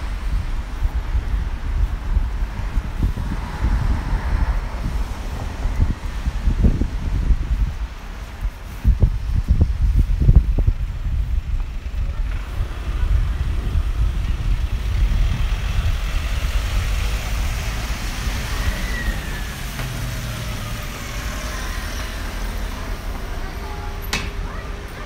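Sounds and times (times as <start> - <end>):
vehicles passing on wet street: 0.0 - 25.0
falling whine of passing vehicle: 11.9 - 25.0.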